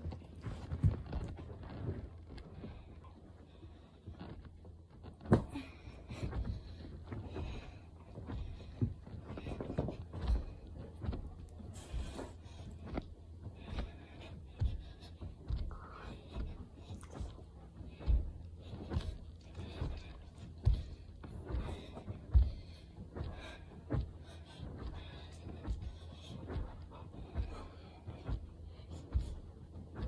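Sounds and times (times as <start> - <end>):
soft thumps and knocks: 4.1 - 30.0
dull thuds: 5.0 - 30.0.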